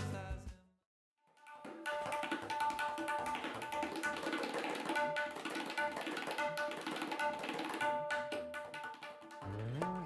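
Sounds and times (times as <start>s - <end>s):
tabla high drum ringing strokes: 1.4s - 10.0s.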